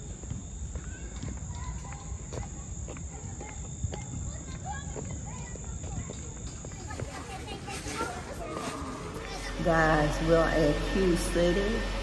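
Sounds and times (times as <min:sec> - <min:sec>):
footsteps on pavement: 0:00.0 - 0:10.0.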